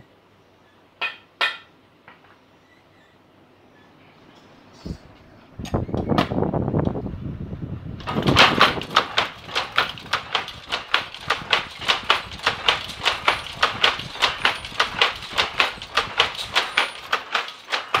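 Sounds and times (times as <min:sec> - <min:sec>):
power loom clacking: 0:08.0 - 0:18.0.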